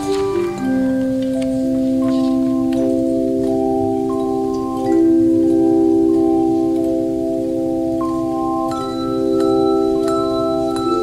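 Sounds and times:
handchimes ringing a chord: 0.0s - 11.0s.

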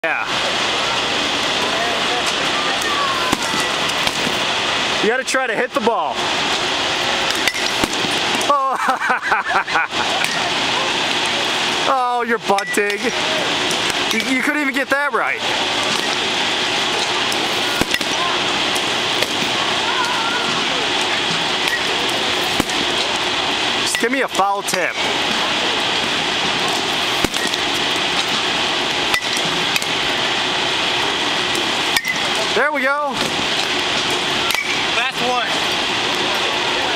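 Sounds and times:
steady background hiss: 0.0s - 36.9s
steady background noise: 0.0s - 36.9s
baseball knocking off bat: 3.2s - 4.4s, 7.3s - 8.5s, 18.8s - 23.0s, 25.2s - 30.0s.

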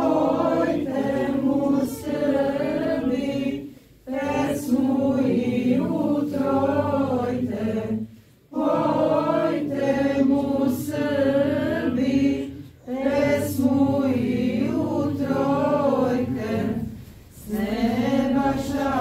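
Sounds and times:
group singing liturgical chant: 0.0s - 19.0s.

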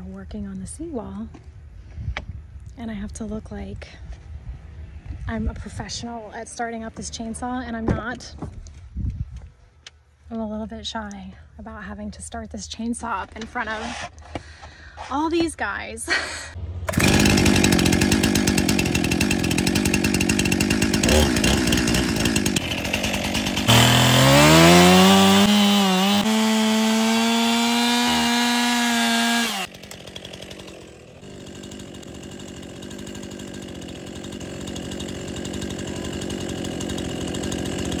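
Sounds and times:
chainsaw revving: 16.5s - 38.0s.

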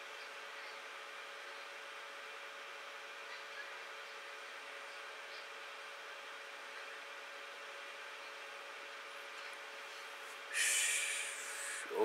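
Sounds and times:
faint steady hum: 0.0s - 12.0s
woman breathing out: 10.6s - 11.9s.

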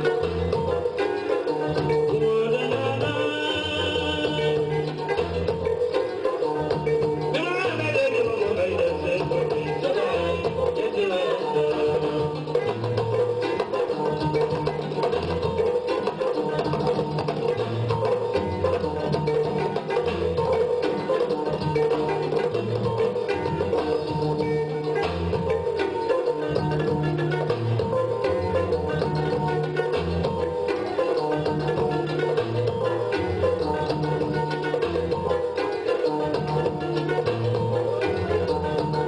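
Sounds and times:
live band with kora and guitar: 0.0s - 39.0s.

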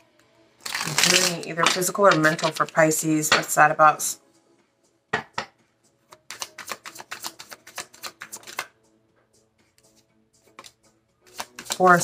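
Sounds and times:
soft background music: 0.0s - 12.0s
cards being shuffled: 0.6s - 2.8s, 6.1s - 8.7s, 9.8s - 12.0s.

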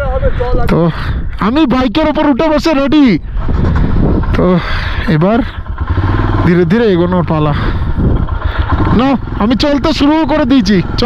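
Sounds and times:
men talking: 0.0s - 3.6s, 4.2s - 11.0s
steady low rumble: 0.1s - 11.0s.

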